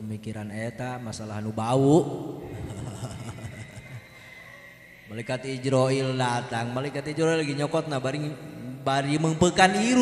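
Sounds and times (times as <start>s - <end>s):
man speaking: 0.0s - 2.8s, 5.1s - 10.0s.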